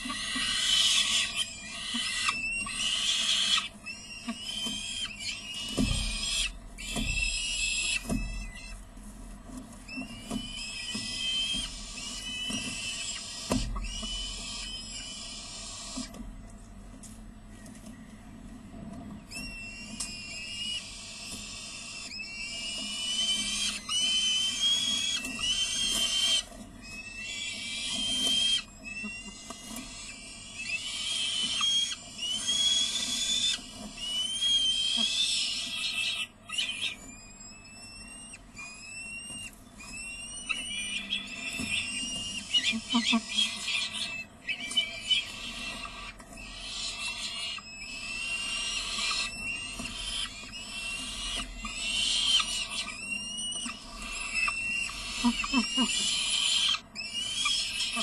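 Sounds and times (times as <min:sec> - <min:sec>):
falcon nestlings begging calls: 0:00.0 - 0:08.8, 0:09.9 - 0:16.2, 0:19.3 - 0:58.0.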